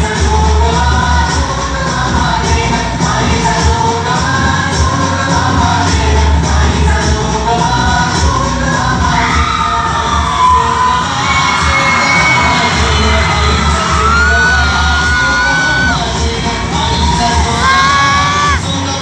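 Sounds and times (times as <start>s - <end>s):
dance music through speakers: 0.0s - 19.0s
audience cheering and shouting: 8.7s - 19.0s.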